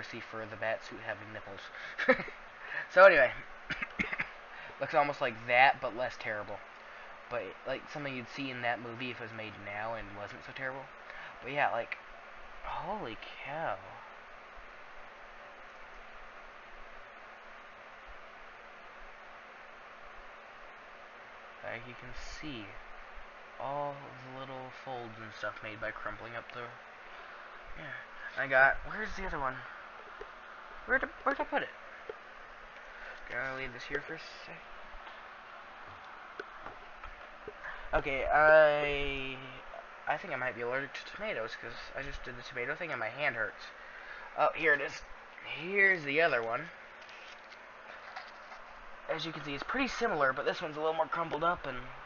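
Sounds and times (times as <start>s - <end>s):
background hiss: 0.0s - 52.0s
faint steady hum: 0.0s - 52.0s.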